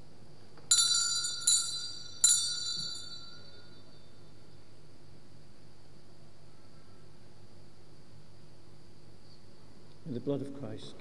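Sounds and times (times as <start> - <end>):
altar bells ringing: 0.7 - 4.4.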